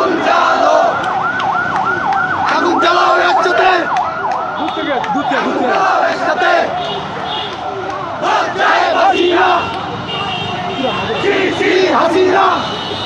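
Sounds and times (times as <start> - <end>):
crowd shouting: 0.0 - 1.1, 2.4 - 4.0, 4.6 - 13.0
siren yelping: 0.0 - 5.5.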